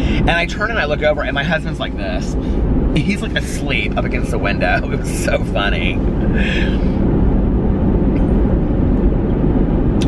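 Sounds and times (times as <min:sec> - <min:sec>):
car engine rumble: 0:00.0 - 0:10.0
road noise: 0:00.0 - 0:10.0.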